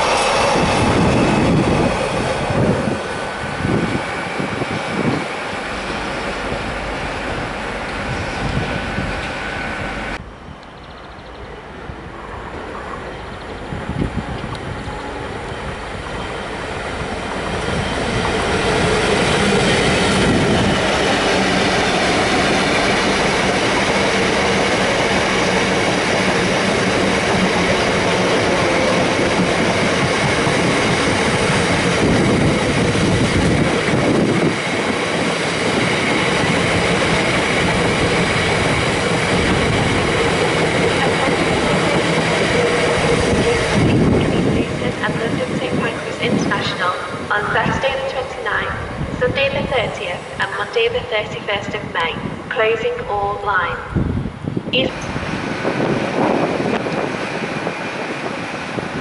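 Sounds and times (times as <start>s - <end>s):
diesel freight train passing: 0.0s - 59.0s.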